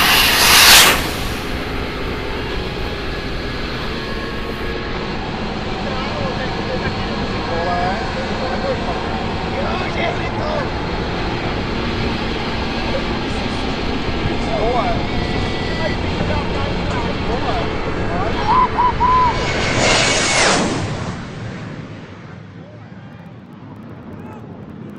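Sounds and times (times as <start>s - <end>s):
fighter jet passing overhead: 0.0s - 24.9s.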